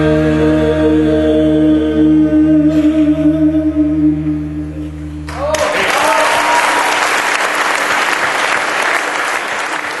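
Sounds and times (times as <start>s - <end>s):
audience applauding: 5.3s - 10.0s.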